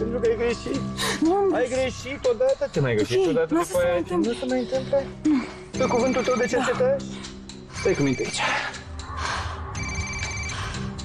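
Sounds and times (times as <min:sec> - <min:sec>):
background score music: 0:00.0 - 0:11.0
mobile phone ringtone: 0:05.8 - 0:06.8, 0:07.8 - 0:08.7, 0:09.8 - 0:10.9.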